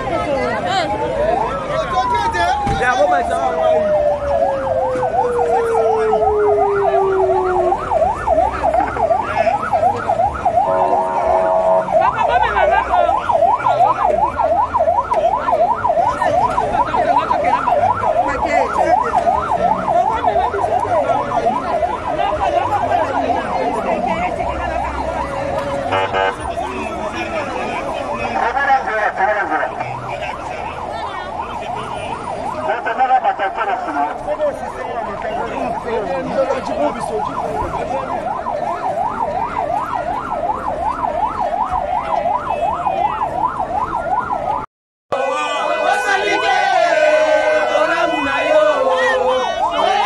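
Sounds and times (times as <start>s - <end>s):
police siren yelping: 0.0s - 50.0s
steady blaring siren tone: 0.0s - 50.0s
siren tone winding down: 1.3s - 25.3s.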